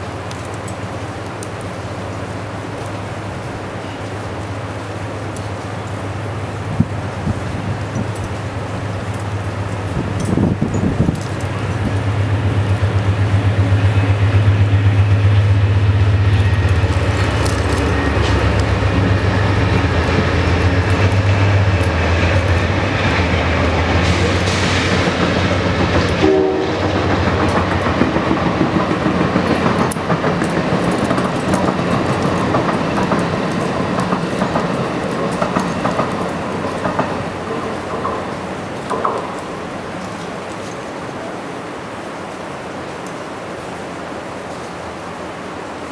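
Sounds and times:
locomotive drone: 0.0s - 45.9s
wheels clacking over rails: 3.5s - 41.2s.

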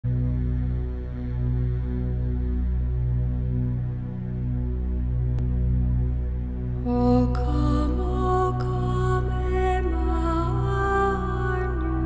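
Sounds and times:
low sustained musical drone: 0.1s - 12.0s.

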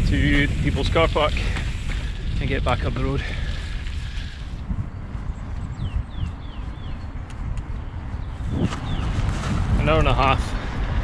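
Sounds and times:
bike tyres rolling on gravel: 0.0s - 11.0s
wind buffeting microphone: 0.0s - 11.0s.

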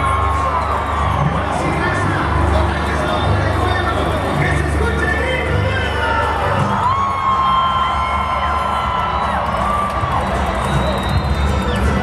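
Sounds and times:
large crowd cheering: 0.0s - 12.0s.

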